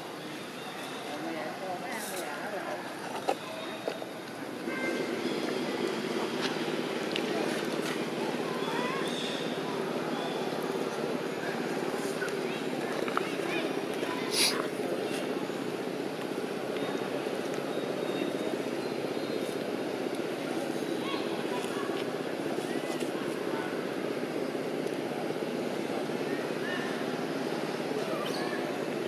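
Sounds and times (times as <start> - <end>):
voices murmuring: 0.0 - 29.0
low engine-like drone: 2.8 - 29.0.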